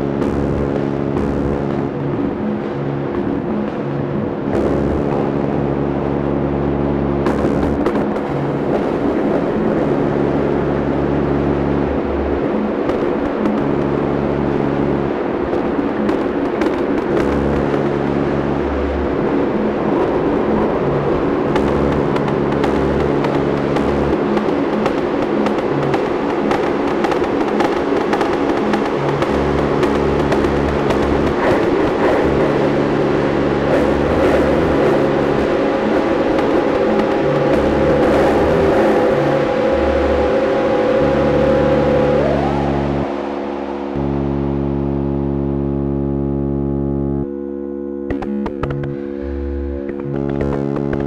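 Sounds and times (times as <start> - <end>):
droning synthesizer tones: 0.0 - 51.0
pulsing low bass tone: 0.0 - 51.0
noisy synthesizer clicks: 21.4 - 51.0.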